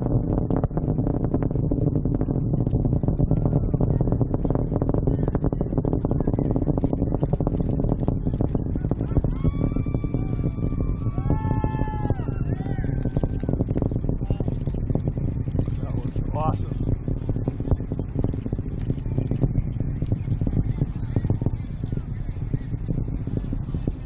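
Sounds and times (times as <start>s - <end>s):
rocket engine rumble: 0.0s - 24.0s
onlookers whooping: 9.3s - 13.5s.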